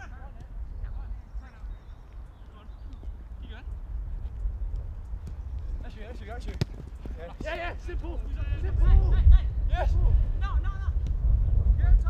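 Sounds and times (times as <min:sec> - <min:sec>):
footsteps of players running: 0:02.0 - 0:08.8
steady low rumble: 0:07.7 - 0:12.0.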